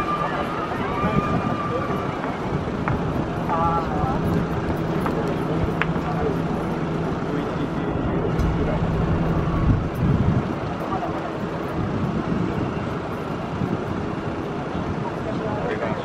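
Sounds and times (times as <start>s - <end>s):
distant jet airliner taking off: 0.0s - 16.0s.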